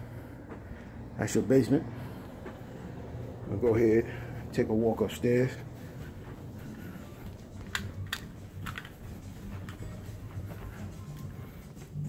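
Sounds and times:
footsteps on carpeted stairs: 0.4 - 0.9, 2.0 - 4.6, 5.5 - 12.0.

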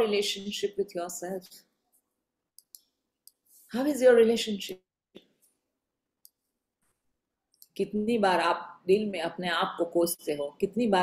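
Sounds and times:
woman speaking: 0.0 - 1.6, 3.7 - 4.9, 7.6 - 11.0.

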